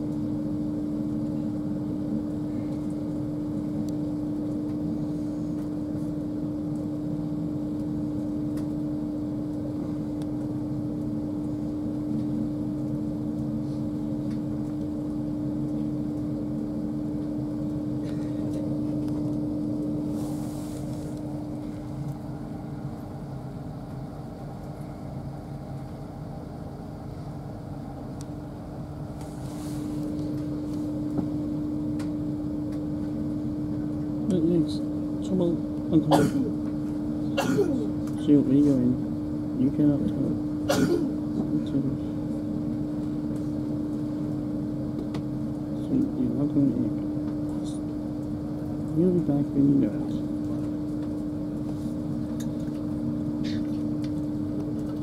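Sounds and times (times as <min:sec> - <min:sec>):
steady hum: 0:00.0 - 0:55.0.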